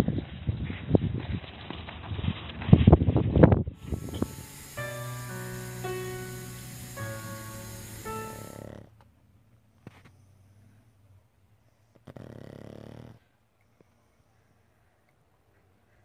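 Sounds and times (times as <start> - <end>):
soft music of held chords: 3.8 - 8.8.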